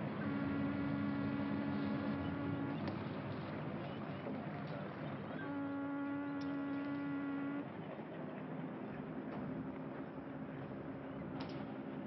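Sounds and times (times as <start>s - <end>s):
ship's horn blast: 0.0s - 3.0s, 5.4s - 7.7s.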